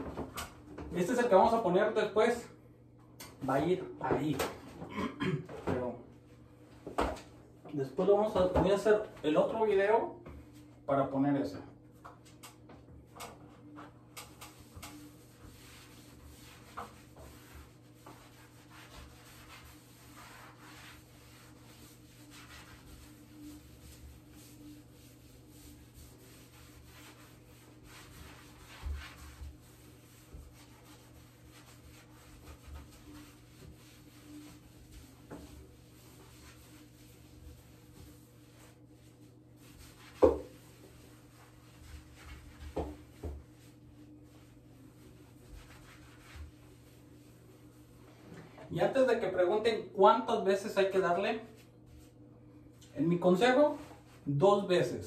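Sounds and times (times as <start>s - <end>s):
sponge wiping tile: 13.1s - 49.0s, 51.5s - 52.2s, 53.2s - 54.4s.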